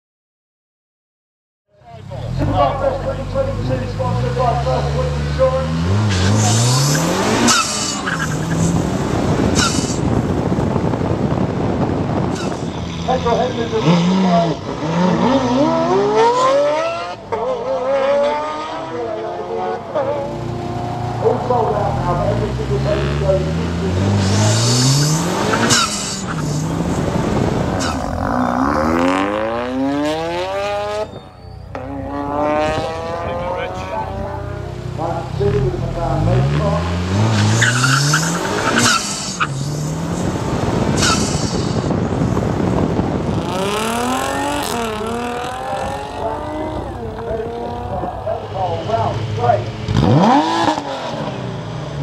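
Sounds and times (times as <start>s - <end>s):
car engine accelerating hard: 2.0s - 52.0s.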